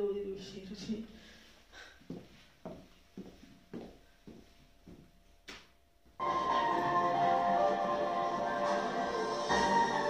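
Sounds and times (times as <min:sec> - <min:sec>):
boot footsteps on tiled floor: 0:01.7 - 0:06.2.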